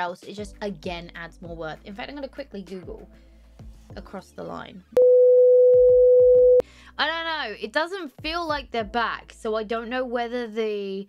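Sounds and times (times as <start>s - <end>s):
electronic test tone: 5.0s - 6.6s.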